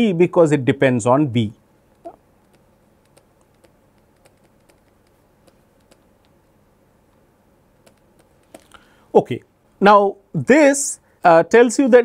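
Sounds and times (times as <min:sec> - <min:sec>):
stylus tapping on pen tablet: 0:02.5 - 0:06.4.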